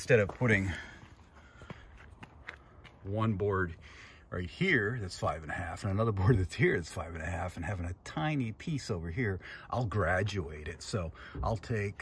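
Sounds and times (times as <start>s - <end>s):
faint footsteps walking: 0.0s - 3.8s.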